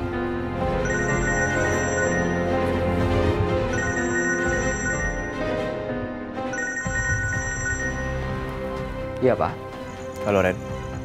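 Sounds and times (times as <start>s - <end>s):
smartphone ringtone ringing: 0.7s - 5.7s, 6.5s - 8.5s.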